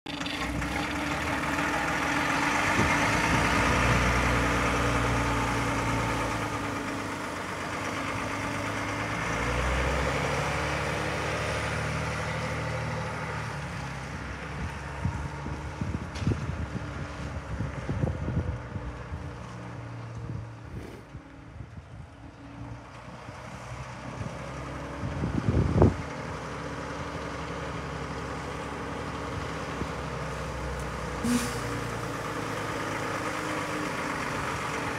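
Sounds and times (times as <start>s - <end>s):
diesel truck engine running: 0.1s - 34.9s.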